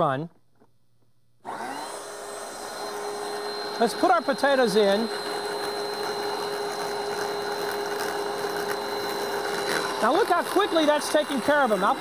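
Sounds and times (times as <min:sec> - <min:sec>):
mixer motor whining: 0:01.4 - 0:12.0.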